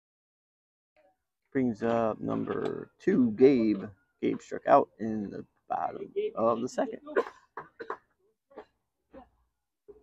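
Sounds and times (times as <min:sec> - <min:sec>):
man coughing: 0:07.1 - 0:09.3.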